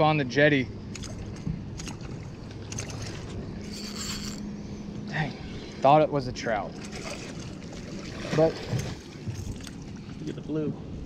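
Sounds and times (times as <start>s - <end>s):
wind and water hiss: 0.0s - 11.0s.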